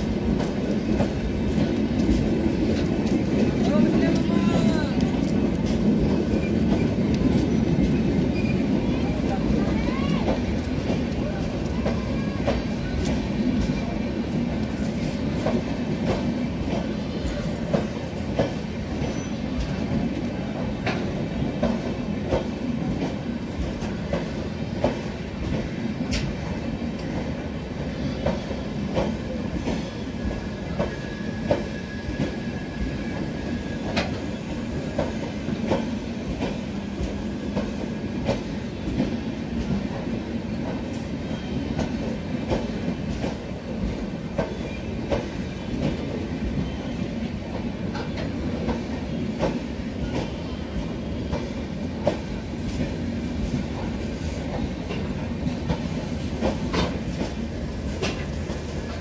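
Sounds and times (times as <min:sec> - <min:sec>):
train coaches rumbling past: 0:00.0 - 0:59.0.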